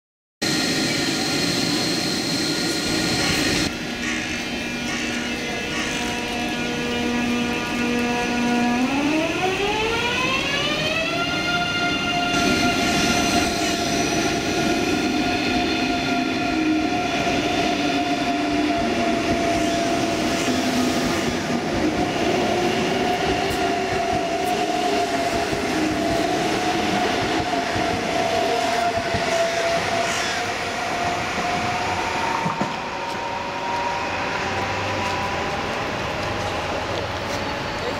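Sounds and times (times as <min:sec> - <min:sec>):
moving train rumble: 0:00.4 - 0:37.9.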